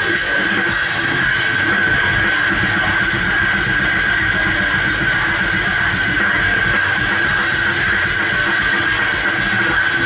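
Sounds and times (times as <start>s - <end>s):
distorted electric guitars: 0.0s - 10.0s
drum kit pounding: 0.0s - 10.0s.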